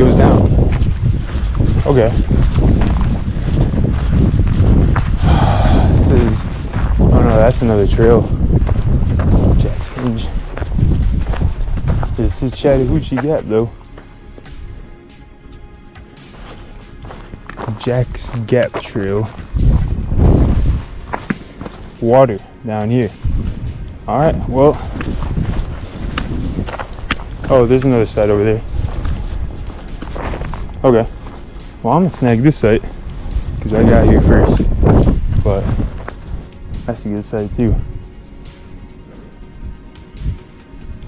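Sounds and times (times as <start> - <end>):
wind rumble on microphone: 0.0 - 13.8, 17.0 - 41.0
footsteps on dry dirt and leaves: 0.0 - 41.0
trekking pole taps: 26.1 - 27.6.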